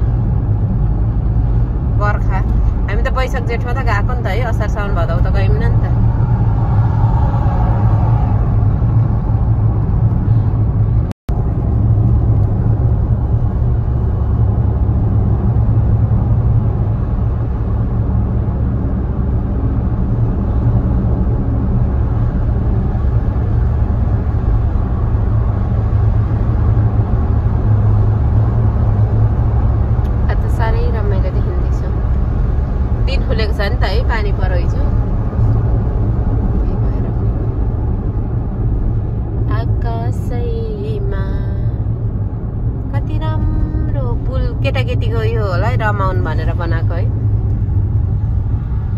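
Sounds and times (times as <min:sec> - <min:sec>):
car cabin road and engine rumble: 0:00.0 - 0:48.9.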